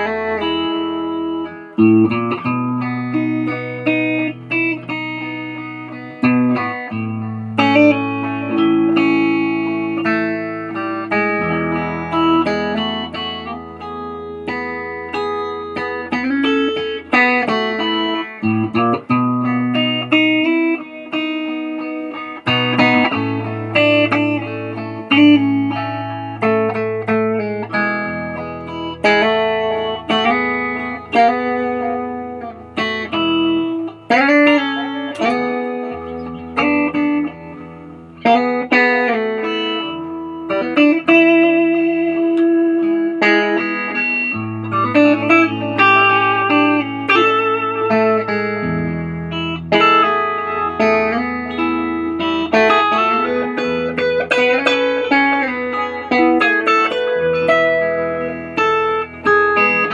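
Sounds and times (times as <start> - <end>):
electric guitar melody: 0.0 - 59.9.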